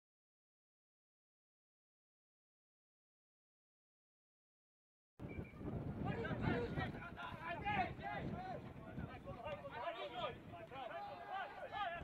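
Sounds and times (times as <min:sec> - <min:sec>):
overlapping voices shouting and talking: 0:05.9 - 0:12.0.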